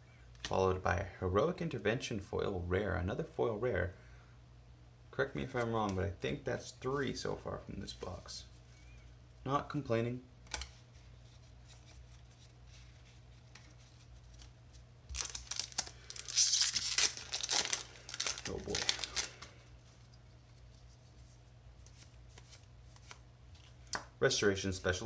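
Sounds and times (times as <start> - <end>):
cards handled: 10.4 - 24.1
foil wrapper tearing and crinkling: 15.1 - 19.5.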